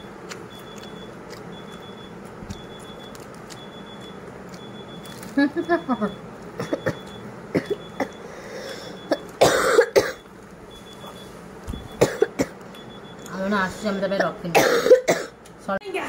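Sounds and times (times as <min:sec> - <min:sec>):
eating clicks and smacks: 0:00.0 - 0:08.2
person coughing: 0:06.6 - 0:08.2, 0:09.1 - 0:10.2, 0:12.0 - 0:12.6, 0:14.2 - 0:15.4.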